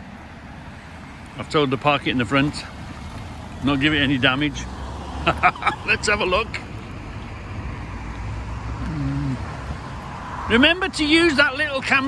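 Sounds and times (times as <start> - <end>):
car engine low rumble: 0.0 - 12.0.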